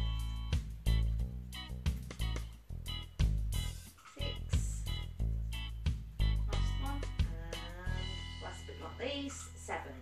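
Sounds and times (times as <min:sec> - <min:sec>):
bass line: 0:00.0 - 0:09.0.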